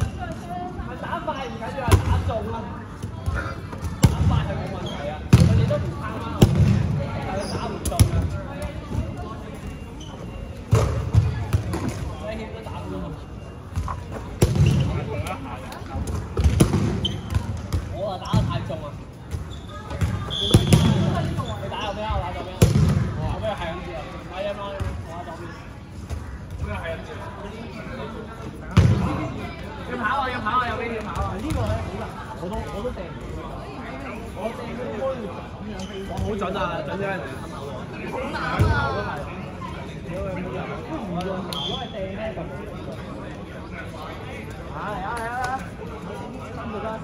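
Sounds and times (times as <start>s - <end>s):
background chatter of players: 0.0s - 47.0s
balls thudding on gym floor: 5.3s - 5.8s, 13.8s - 15.0s, 22.6s - 23.2s.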